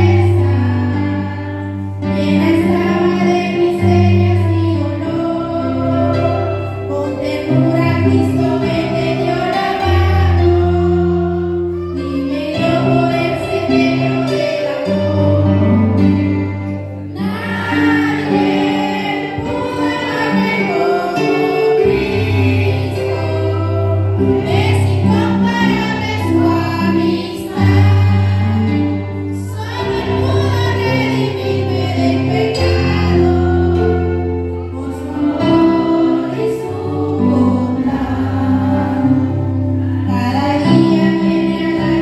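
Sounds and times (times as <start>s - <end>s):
congregation singing a hymn: 0.0s - 42.0s
electronic keyboard accompaniment: 0.0s - 42.0s
woman singing into a microphone: 40.0s - 42.0s.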